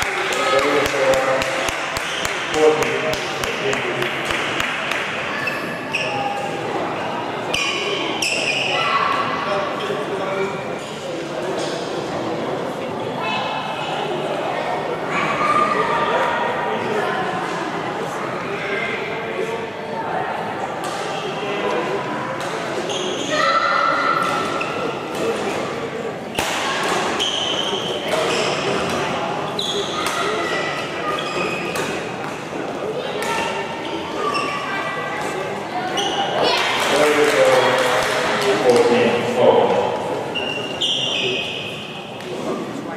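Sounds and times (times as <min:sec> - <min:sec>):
spectators chattering: 0:00.0 - 0:42.9
shoes squeaking on court: 0:27.0 - 0:32.4, 0:33.3 - 0:36.4, 0:40.3 - 0:42.7.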